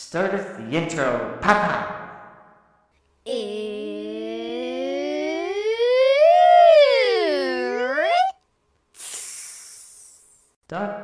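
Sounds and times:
sliding voice-like note: 0:03.3 - 0:08.3.

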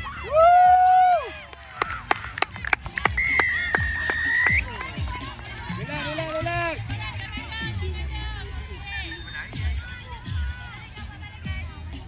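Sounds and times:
sharp claps: 0:01.5 - 0:05.0.

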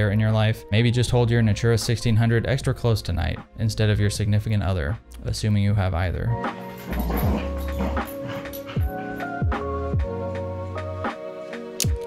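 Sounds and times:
background music with held notes: 0:00.0 - 0:12.0
dog excited vocal sounds: 0:06.8 - 0:09.3.

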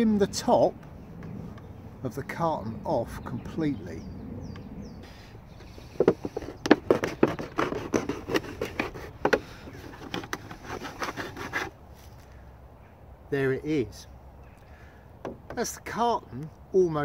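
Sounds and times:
knife cutting plastic carton: 0:06.3 - 0:11.8.

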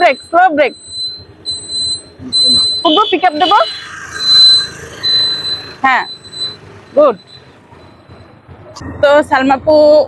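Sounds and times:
high electronic beep: 0:00.0 - 0:09.0.

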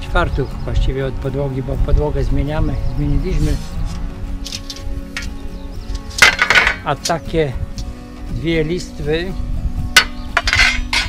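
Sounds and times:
background music: 0:00.0 - 0:11.0
metal strips rattling together: 0:04.4 - 0:05.4, 0:06.1 - 0:07.2.

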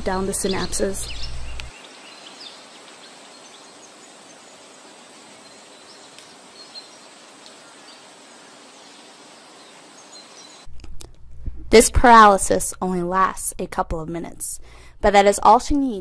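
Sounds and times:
soft outdoor hiss: 0:00.0 - 0:16.0.

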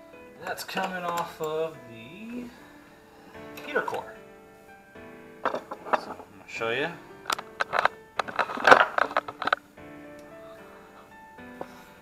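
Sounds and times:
background music with held tones: 0:00.0 - 0:12.0
handling knocks and scrapes: 0:05.5 - 0:06.4.

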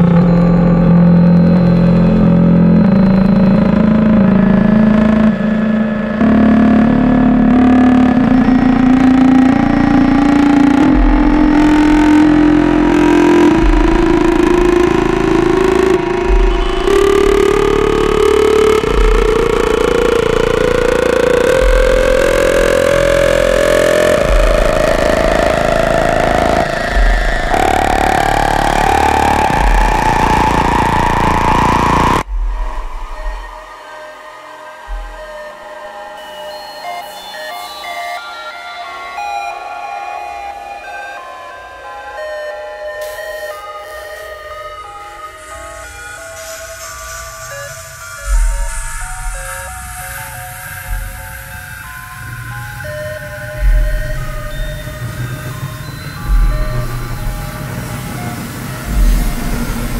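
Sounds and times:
rising droning tone: 0:00.0 - 0:37.1, 0:38.9 - 0:59.9
short low thuds: 0:56.2 - 0:57.6.

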